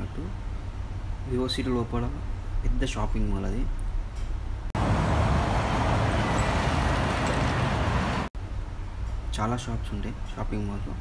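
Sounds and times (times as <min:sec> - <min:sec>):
road traffic rumbling: 0:03.8 - 0:09.0.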